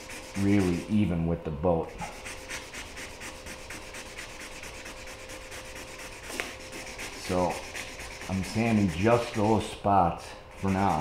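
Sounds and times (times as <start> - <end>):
sandpaper wet-sanding back and forth: 0.0 - 1.1, 1.8 - 9.8, 10.5 - 11.0.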